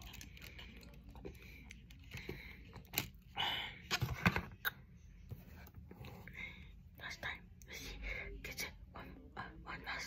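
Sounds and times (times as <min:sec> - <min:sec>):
soft close whispering: 0:06.0 - 0:10.0.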